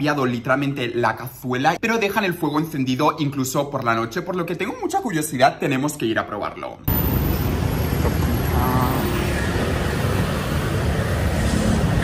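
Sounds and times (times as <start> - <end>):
street traffic rumble: 6.9 - 12.0.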